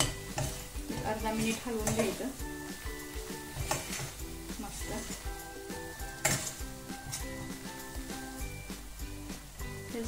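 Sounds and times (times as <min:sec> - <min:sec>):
metal spatula scraping a pan: 0:00.0 - 0:08.4
background music: 0:00.0 - 0:10.0
light sizzle: 0:00.0 - 0:10.0.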